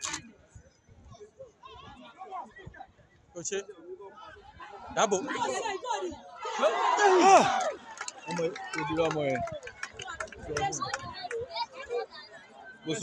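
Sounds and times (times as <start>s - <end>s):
people talking and calling out: 0.0s - 0.2s, 4.0s - 13.0s
loud shout: 6.4s - 9.4s.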